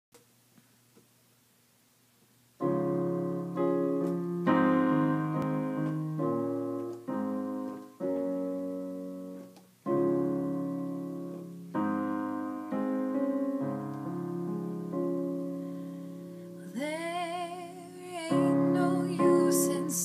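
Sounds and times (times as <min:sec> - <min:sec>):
keyboard piano chords: 0:02.6 - 0:20.0.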